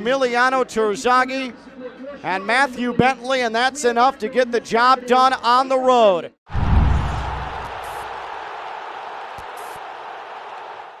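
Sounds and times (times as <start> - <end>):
deep boom: 6.5 - 8.2
noisy whooshing wash: 6.6 - 8.2.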